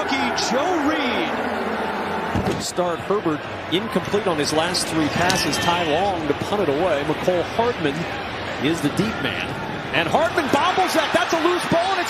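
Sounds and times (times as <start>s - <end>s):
man commentating: 0.0s - 1.5s, 8.7s - 12.0s
steady background noise: 0.0s - 12.0s.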